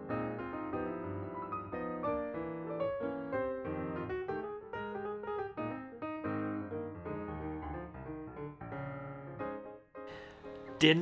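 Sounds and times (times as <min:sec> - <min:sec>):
piano melody over soft chords: 0:00.0 - 0:11.0.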